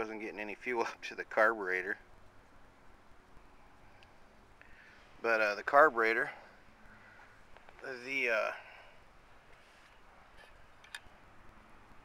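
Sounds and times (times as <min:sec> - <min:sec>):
faint background hiss: 0:00.0 - 0:12.0.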